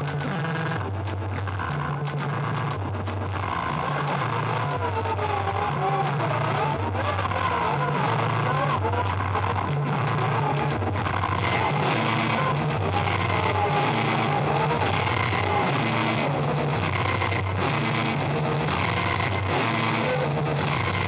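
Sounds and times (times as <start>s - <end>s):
repeating low bass figure: 0.0s - 21.0s
dense noisy wash: 2.4s - 21.0s.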